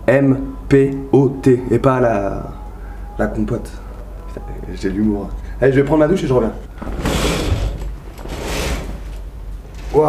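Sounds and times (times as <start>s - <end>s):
curtain sliding along rail: 6.8s - 10.0s.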